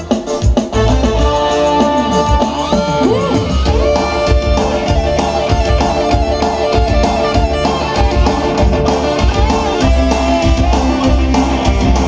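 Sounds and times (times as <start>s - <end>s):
drum beat: 0.0s - 12.0s
electric guitar: 0.0s - 12.0s
electric keyboard: 0.0s - 12.0s.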